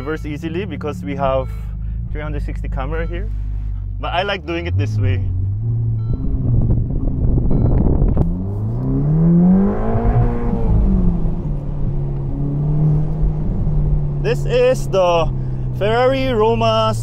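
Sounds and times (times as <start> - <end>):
car engine pulling away: 0.0 - 17.0.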